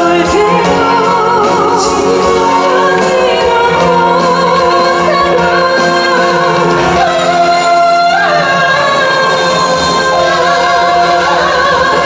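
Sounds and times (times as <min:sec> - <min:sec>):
amplified music accompaniment: 0:00.0 - 0:12.0
woman singing into microphone: 0:00.0 - 0:12.0.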